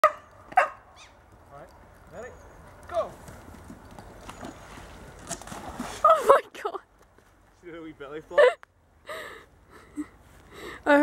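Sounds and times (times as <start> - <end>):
dog barking and yelping: 0.0 - 0.9.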